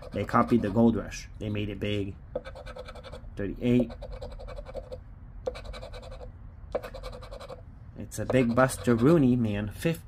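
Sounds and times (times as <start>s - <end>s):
scraping scratch-off ticket: 0.0s - 0.8s.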